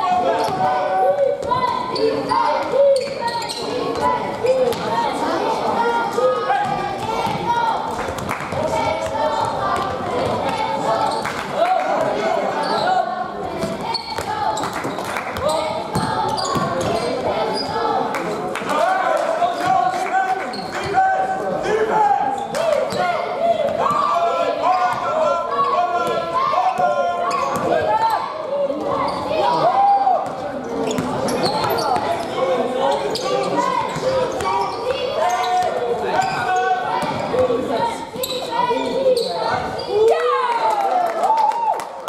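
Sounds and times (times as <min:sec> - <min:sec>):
players' voices: 0:00.0 - 0:42.0
sneaker squeaks on floor: 0:01.4 - 0:04.8, 0:12.6 - 0:13.0, 0:13.6 - 0:17.8, 0:27.2 - 0:28.2, 0:28.9 - 0:29.4, 0:30.2 - 0:32.2, 0:32.9 - 0:37.5, 0:38.2 - 0:40.1
basketball bouncing on court: 0:06.6 - 0:07.5, 0:15.4 - 0:17.1, 0:37.0 - 0:37.5.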